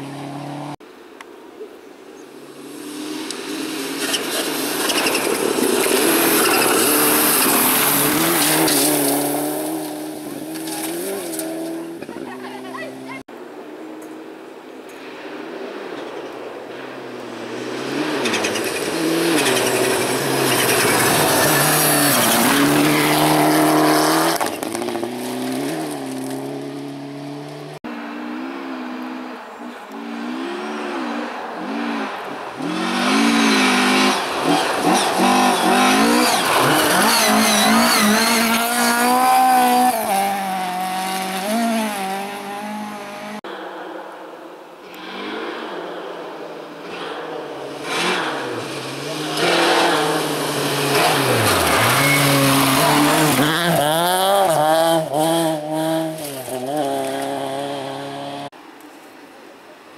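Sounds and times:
rally car engines revving: 0:02.4 - 0:13.3, 0:16.7 - 0:43.6, 0:44.8 - 0:58.6
tyres hissing on loose gravel: 0:47.7 - 0:54.8.

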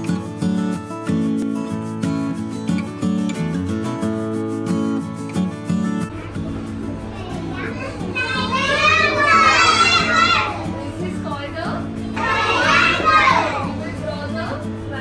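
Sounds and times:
soft background music: 0:00.0 - 0:15.0
children calling out in chorus: 0:07.7 - 0:10.8, 0:12.1 - 0:13.8.

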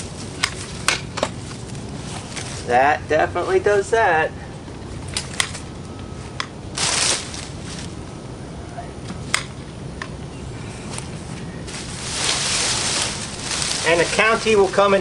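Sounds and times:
shrub branches rustling: 0:00.0 - 0:02.8, 0:05.2 - 0:08.1, 0:10.6 - 0:15.0
twigs snapping: 0:11.7 - 0:14.6.

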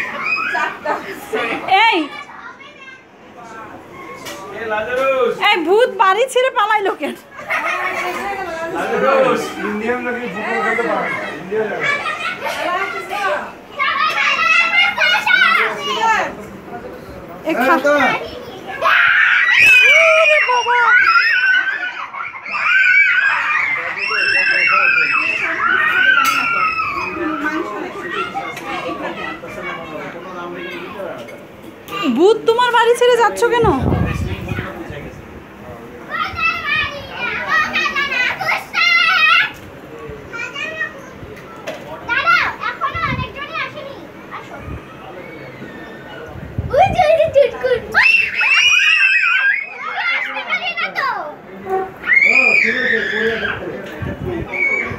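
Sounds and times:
children talking and calling out: 0:00.0 - 0:54.9.

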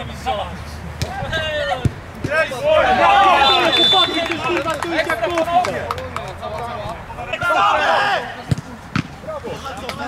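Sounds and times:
players shouting: 0:01.0 - 0:10.0.

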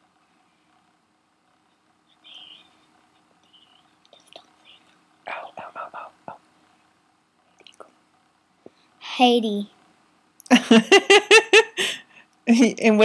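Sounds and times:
person whispering close to microphone: 0:03.5 - 0:06.4.

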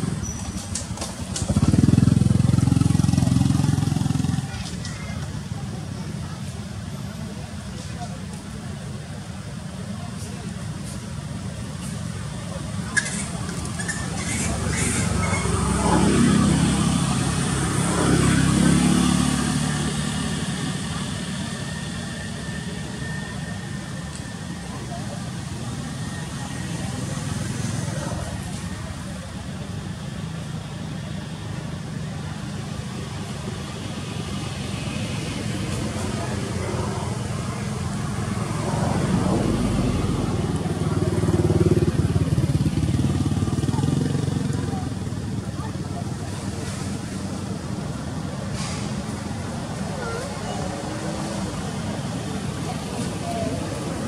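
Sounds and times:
motor vehicles passing: 0:00.0 - 0:54.0.

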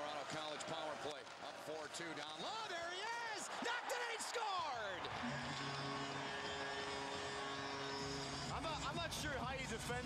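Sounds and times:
crowd cheering: 0:00.0 - 0:08.6.

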